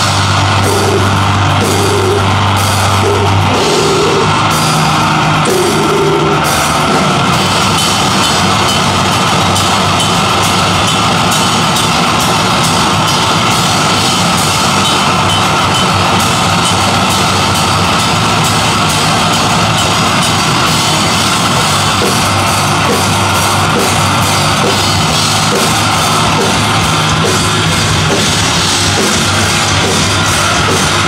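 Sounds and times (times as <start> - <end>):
cymbals: 0.0 - 31.0
drum kit pounding: 0.0 - 31.0
electric guitars: 0.0 - 31.0.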